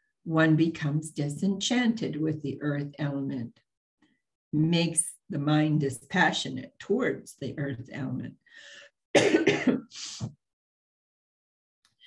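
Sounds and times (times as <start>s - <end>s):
woman coughing: 9.1s - 9.9s.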